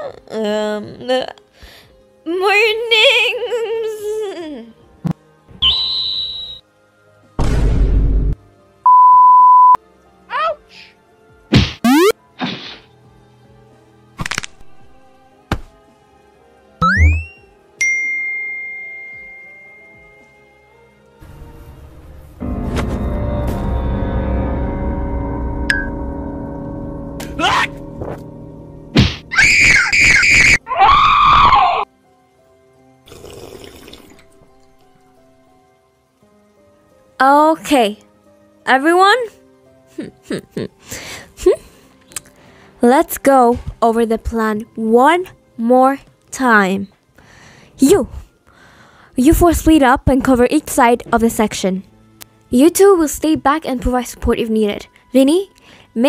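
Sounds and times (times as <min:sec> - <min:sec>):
faint background music: 0:00.0 - 0:56.0
rising whistle-like zip: 0:05.6 - 0:06.6, 0:16.8 - 0:17.5
electronic beep: 0:08.9 - 0:09.8, 0:11.9 - 0:12.1, 0:16.8 - 0:17.4
cartoon puff: 0:11.5 - 0:12.9
swooping blip: 0:11.8 - 0:12.2, 0:16.8 - 0:17.5
people screaming: 0:29.3 - 0:31.9.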